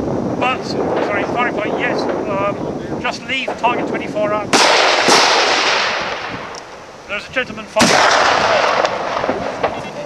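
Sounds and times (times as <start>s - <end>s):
rifle shot: 4.5s - 6.6s, 7.8s - 9.9s.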